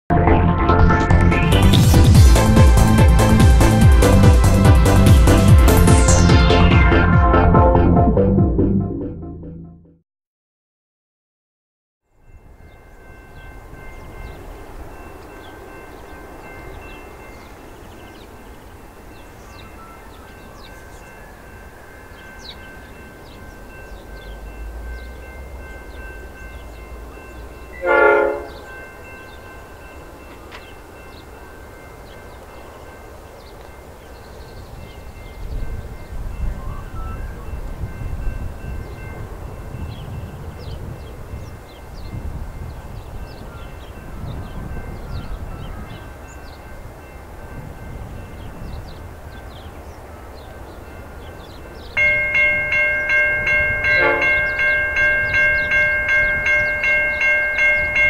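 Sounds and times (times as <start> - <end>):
low rumble of locomotive engines: 0.1 - 9.6, 12.1 - 58.0
birds chirping: 12.2 - 39.2, 39.8 - 47.5, 48.2 - 58.0
train horn blast: 27.7 - 28.8, 52.0 - 55.7.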